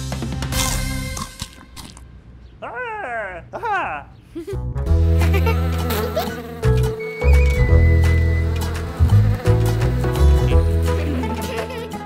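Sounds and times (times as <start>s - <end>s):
instrumental music with bass: 4.6s - 11.8s
cartoon buzzing insect effect: 5.0s - 11.0s.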